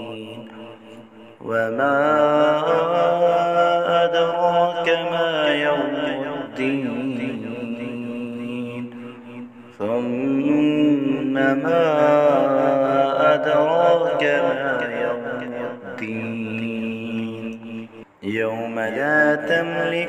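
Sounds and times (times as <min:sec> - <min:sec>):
person chanting melodically: 0:00.0 - 0:20.0.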